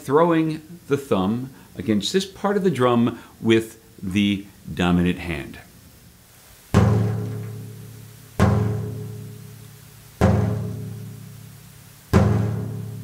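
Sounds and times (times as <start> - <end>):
low frame drum strokes: 6.8 - 9.5.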